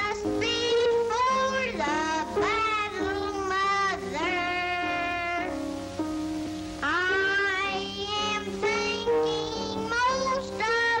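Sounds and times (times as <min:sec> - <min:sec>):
boy singing: 0:00.0 - 0:05.6, 0:06.8 - 0:11.0
instrumental accompaniment: 0:00.0 - 0:11.0.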